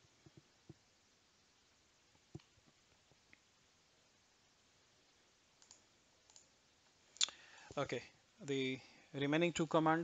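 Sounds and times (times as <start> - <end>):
faint computer mouse clicks: 5.6 - 6.5.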